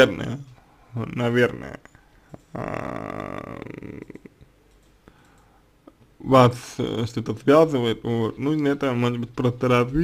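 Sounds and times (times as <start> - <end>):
man's creaky hesitation sound: 1.8 - 4.4.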